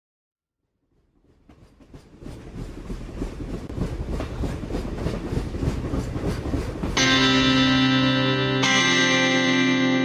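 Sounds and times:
train clattering over rail joints: 0:01.2 - 0:07.6.

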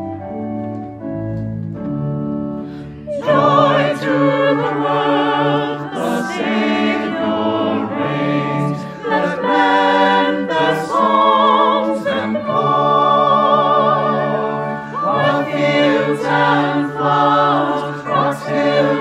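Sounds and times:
organ: 0:00.0 - 0:19.0
choir singing a hymn: 0:03.0 - 0:19.0.

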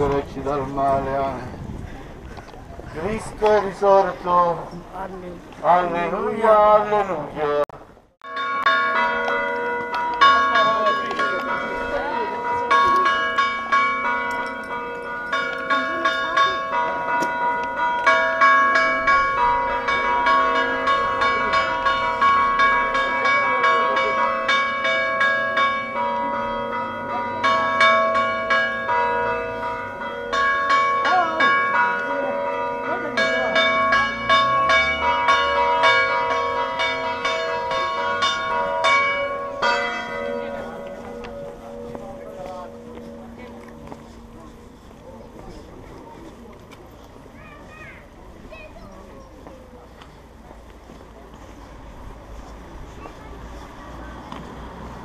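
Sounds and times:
church bells pealing: 0:08.2 - 0:47.0.

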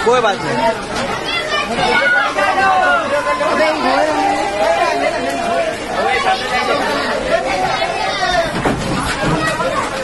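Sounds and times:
men talking and calling out: 0:00.0 - 0:10.0.

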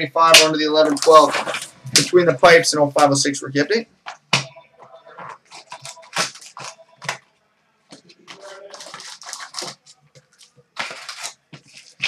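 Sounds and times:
foil wrappers crinkling and ripping: 0:05.5 - 0:06.8, 0:08.3 - 0:12.0.

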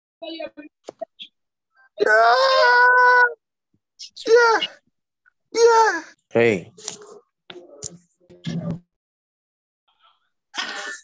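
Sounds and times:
person wailing: 0:02.0 - 0:03.4.

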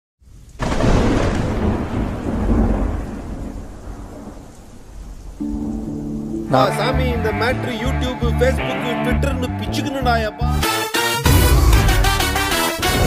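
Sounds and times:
rain: 0:00.2 - 0:08.5
thunder rolling: 0:00.6 - 0:06.2
held music chord: 0:05.4 - 0:13.0.

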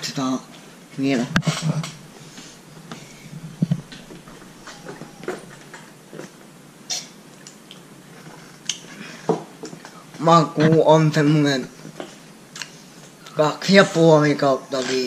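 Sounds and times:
mouth clicks: 0:01.4 - 0:06.3.

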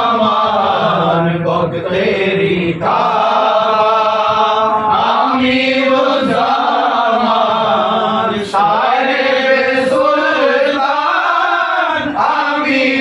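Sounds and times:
men singing a chant together: 0:00.0 - 0:13.0.

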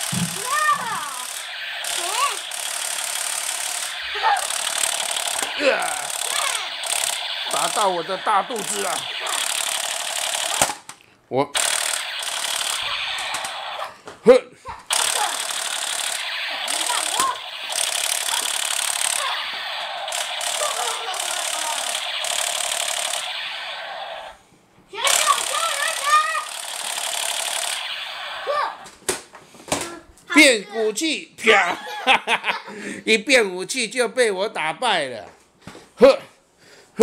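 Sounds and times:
toy gun electronic rapid-fire buzz: 0:00.0 - 0:10.9, 0:11.6 - 0:14.0, 0:14.9 - 0:24.4, 0:25.0 - 0:28.9
child calling out: 0:00.4 - 0:01.2, 0:02.0 - 0:02.4, 0:04.2 - 0:04.5, 0:05.6 - 0:06.7.

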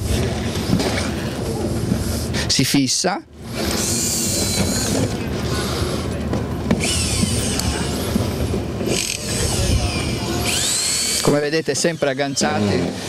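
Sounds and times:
power drill driving screws: 0:03.5 - 0:06.0, 0:06.7 - 0:13.0.

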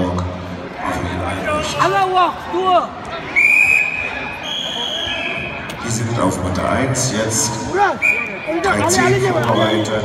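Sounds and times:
referee's whistle blast: 0:03.4 - 0:05.6, 0:08.0 - 0:08.5, 0:09.5 - 0:10.0.

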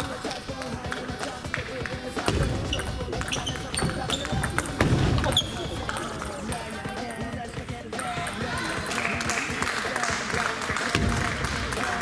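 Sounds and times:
chatter of busy hall: 0:00.0 - 0:12.0
shoe squeaks on wooden floor: 0:02.6 - 0:06.1.

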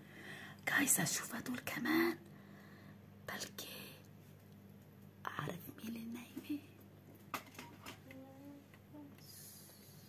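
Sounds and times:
person whispering softly: 0:03.3 - 0:04.1, 0:05.2 - 0:06.8, 0:08.1 - 0:10.0.

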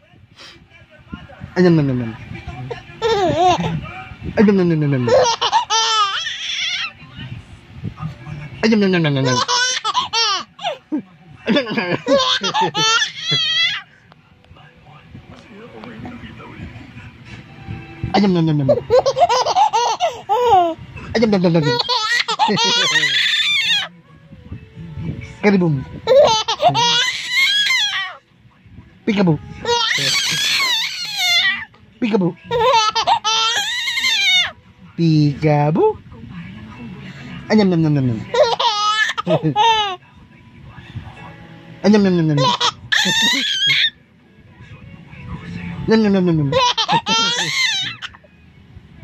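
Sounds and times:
baby laughing: 0:02.7 - 0:03.8, 0:05.0 - 0:06.9, 0:08.9 - 0:10.8, 0:11.4 - 0:13.8, 0:18.6 - 0:23.9, 0:26.0 - 0:28.2, 0:29.6 - 0:31.7, 0:32.5 - 0:34.5, 0:38.3 - 0:40.0, 0:42.3 - 0:43.9, 0:46.4 - 0:48.3.

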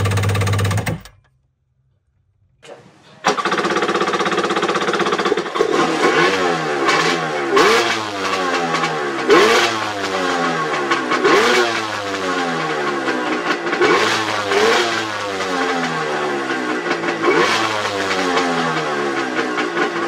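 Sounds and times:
jet ski engine revving: 0:02.6 - 0:20.0.

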